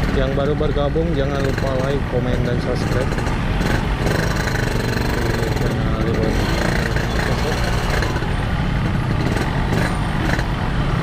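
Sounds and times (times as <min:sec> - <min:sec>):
motorcycle engine running at low speed: 0:01.3 - 0:11.0.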